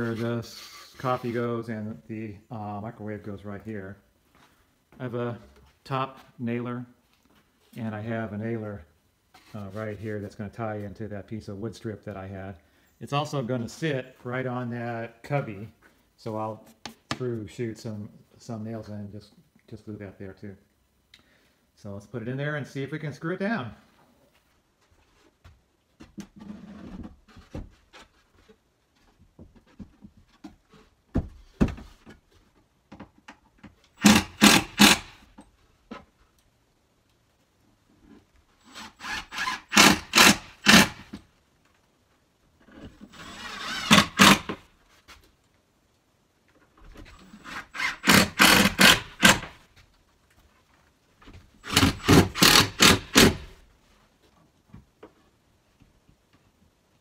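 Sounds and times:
drill driving screws into plywood: 34.0s - 35.3s, 38.6s - 41.2s, 42.9s - 44.7s, 47.2s - 49.6s, 51.6s - 53.6s.

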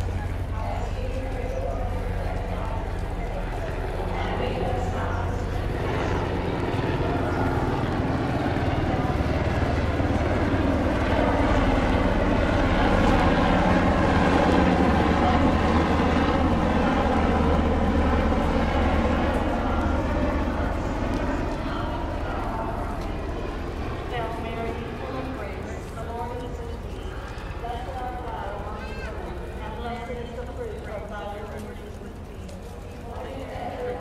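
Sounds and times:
low engine drone: 0.0s - 34.0s.

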